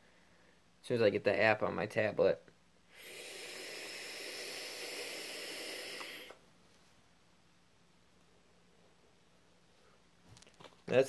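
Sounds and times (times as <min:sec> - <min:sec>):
vape hissing: 0:02.9 - 0:06.4.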